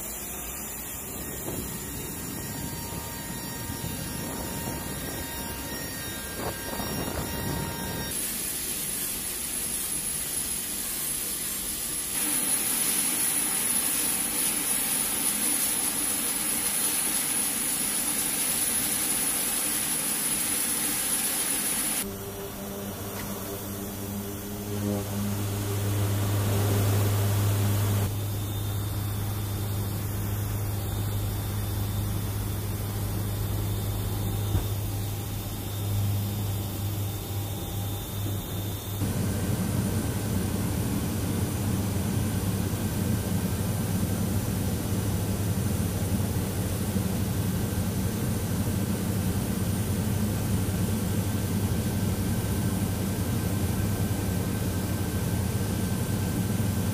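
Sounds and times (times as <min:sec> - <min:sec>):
low propeller hum: 0:00.0 - 0:08.2, 0:22.0 - 0:56.9
turboprop engines whining: 0:00.0 - 0:56.9.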